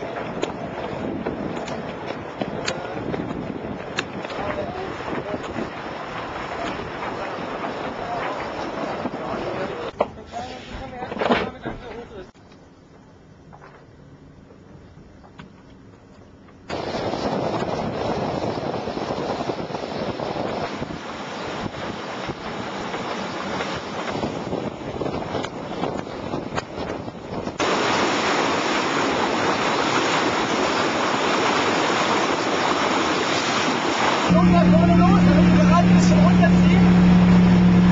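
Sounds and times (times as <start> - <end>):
wind rushing over microphone: 0.0 - 9.9, 16.7 - 37.9
sea water surging along hull: 0.0 - 10.9, 16.7 - 37.9.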